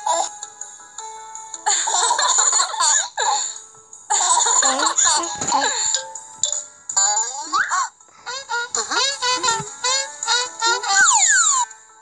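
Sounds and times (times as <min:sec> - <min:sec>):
playful cartoon music: 0:00.0 - 0:12.0
chirpy pitched notes: 0:08.5 - 0:11.7.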